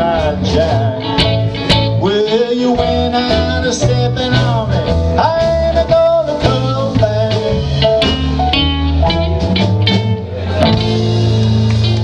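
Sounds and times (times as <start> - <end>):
country band playing: 0.0 - 12.0.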